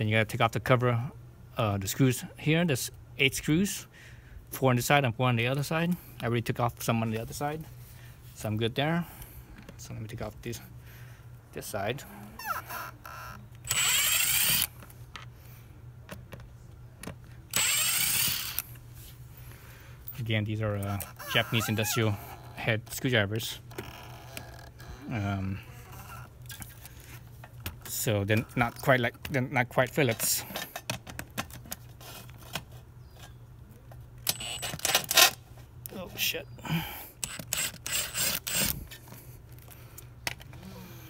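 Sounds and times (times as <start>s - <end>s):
cordless impact driver running: 13.6s - 14.7s, 17.5s - 18.6s, 37.2s - 38.8s
tool and screw clicks: 13.6s - 14.7s, 17.5s - 18.6s, 34.2s - 35.4s, 37.2s - 39.0s
driver bit clicking in screw: 37.2s - 38.7s.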